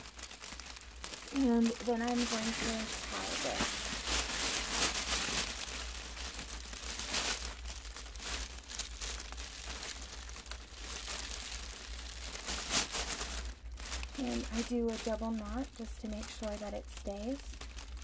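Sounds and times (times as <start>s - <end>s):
plastic bag crinkling: 0.0s - 18.0s.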